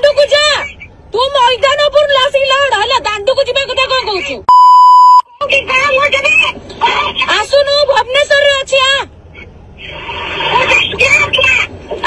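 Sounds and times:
woman arguing heatedly: 0.0 - 4.5, 5.4 - 9.2, 10.5 - 12.0
censor bleep: 4.5 - 5.3.

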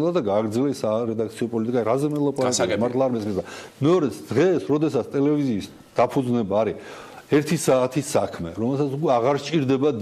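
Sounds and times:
man talking: 0.0 - 10.0.

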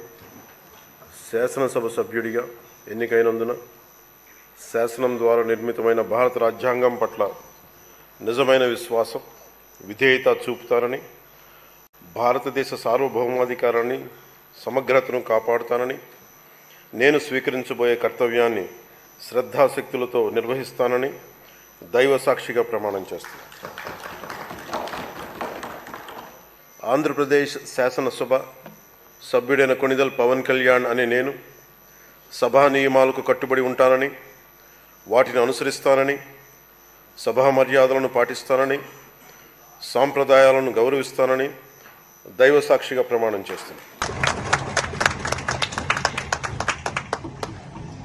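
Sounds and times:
people clapping: 23.1 - 26.5, 43.5 - 48.0
thumping desks: 23.6 - 26.4.

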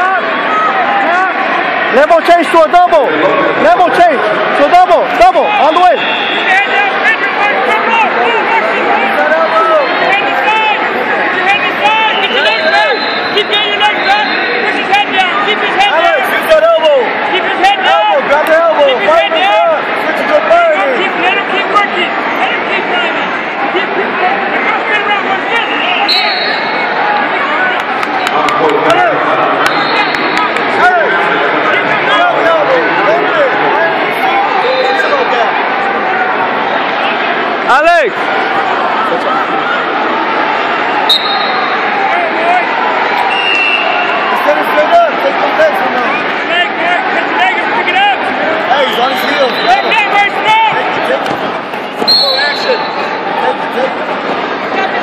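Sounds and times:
arena crowd hubbub: 0.0 - 55.0
people shouting: 0.0 - 55.0.

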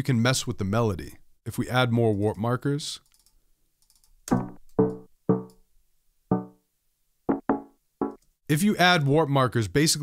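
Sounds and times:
stuttering chord stabs: 4.4 - 5.5.

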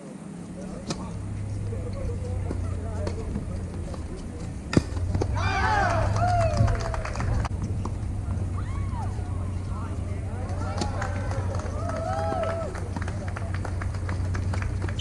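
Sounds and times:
faint voices talking: 0.0 - 15.0
tennis ball struck by rackets: 0.7 - 1.7, 2.3 - 5.5, 10.4 - 11.0.

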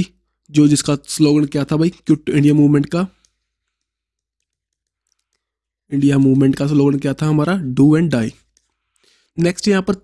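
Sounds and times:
stylus clicking on tablet screen: 2.0 - 7.3, 8.1 - 9.5.

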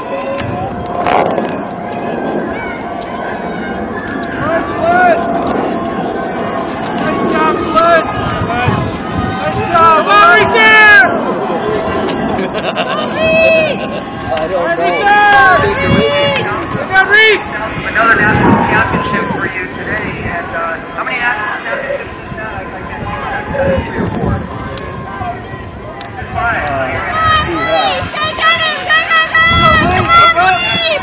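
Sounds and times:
raised voices talking: 0.0 - 31.0
people laughing: 11.3 - 16.6.

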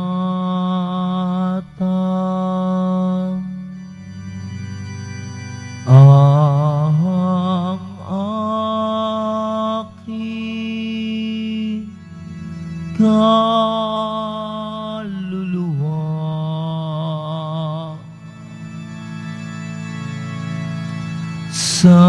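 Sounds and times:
person singing a slow hymn: 0.0 - 3.9, 5.8 - 18.5, 21.3 - 22.0
sustained accompaniment: 0.0 - 22.0.

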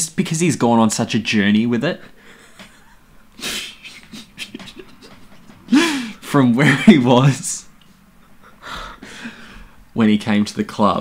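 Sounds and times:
man breathing quietly: 5.7 - 6.2, 7.9 - 9.9.

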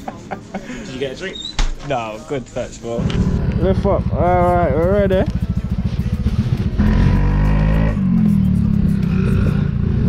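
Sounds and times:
music playing: 2.8 - 10.0
scooter engines revving: 3.0 - 10.0.

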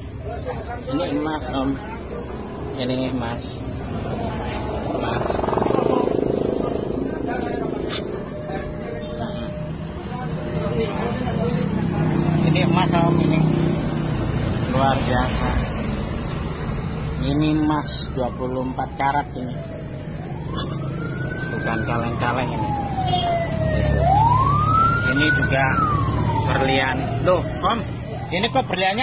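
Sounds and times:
siren wailing: 3.4 - 13.7, 17.2 - 29.0.

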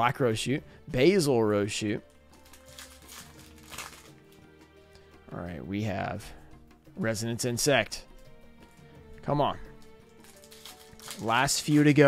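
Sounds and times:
quiet background music: 0.0 - 12.0
foil pack crinkling: 2.3 - 4.4, 9.8 - 12.0.

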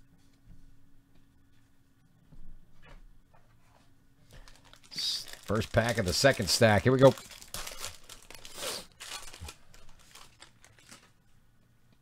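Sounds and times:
wrapper crinkling and ripping: 4.3 - 11.2.

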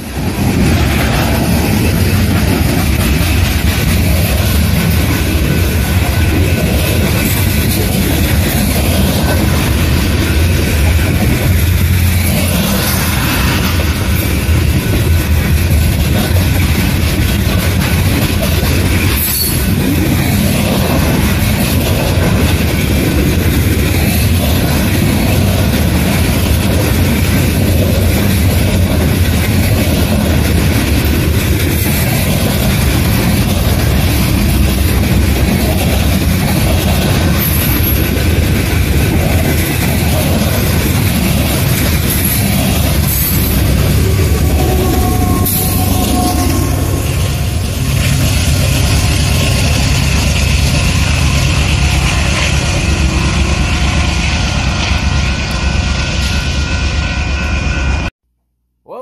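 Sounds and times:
freight train wheels rumbling on rails: 0.0 - 58.1.

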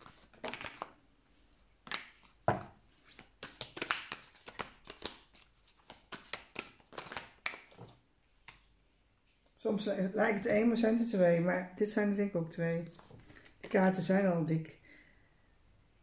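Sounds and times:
cards shuffled by hand: 0.0 - 8.7, 12.9 - 13.9.

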